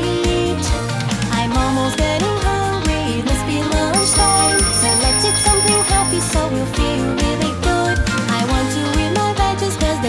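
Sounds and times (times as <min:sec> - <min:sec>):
children's pop song: 0:00.0 - 0:10.0
high steady ringing tone: 0:04.0 - 0:06.5.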